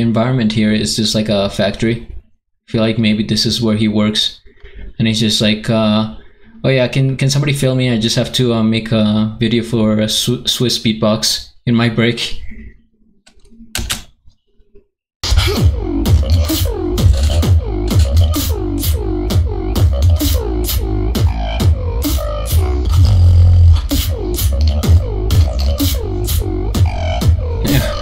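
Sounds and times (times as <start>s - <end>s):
beatboxing into a microphone: 15.5s - 28.0s.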